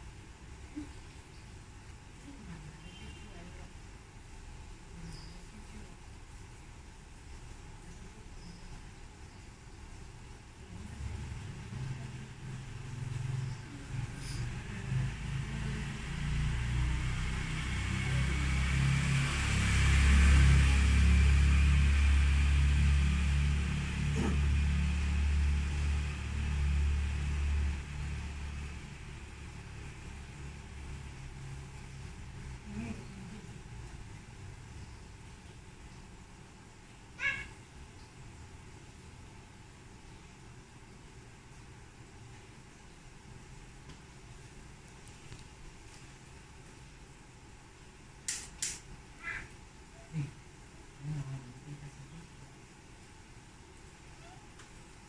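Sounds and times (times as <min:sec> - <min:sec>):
motor vehicle passing by: 0:10.8 - 0:33.5
sharp click: 0:48.3 - 0:48.9.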